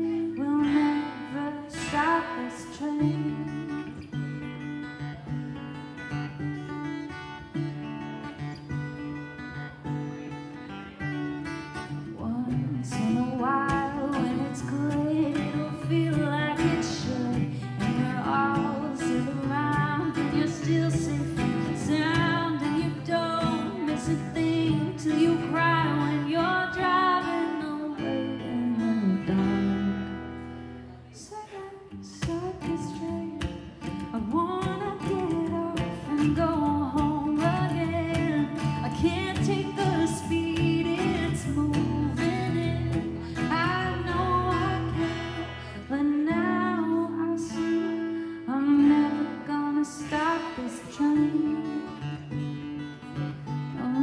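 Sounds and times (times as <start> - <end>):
acoustic guitar picking: 0.0 - 54.0.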